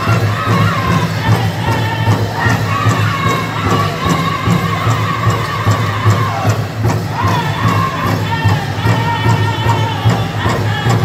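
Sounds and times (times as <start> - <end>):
crowd noise: 0.0 - 11.0
group singing high-pitched song: 0.0 - 11.0
large drum steady beat: 0.0 - 11.0.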